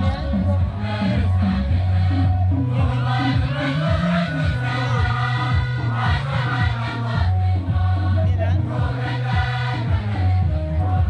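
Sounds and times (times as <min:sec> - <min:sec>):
gospel choir singing: 0:00.0 - 0:11.0
low accompaniment with beat: 0:00.0 - 0:11.0.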